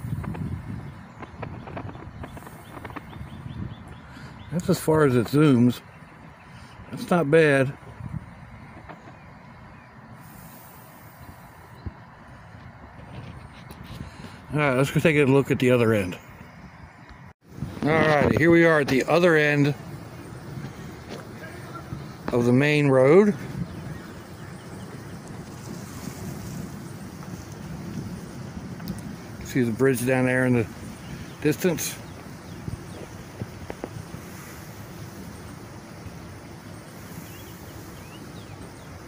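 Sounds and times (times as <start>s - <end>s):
outdoor rumble and hiss: 0.0s - 39.0s
wind buffeting microphone: 0.0s - 39.0s.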